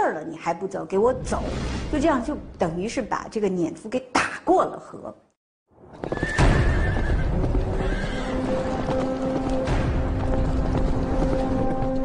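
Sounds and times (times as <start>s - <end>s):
horse hooves galloping: 5.8s - 12.0s
horse neighing: 6.1s - 8.5s.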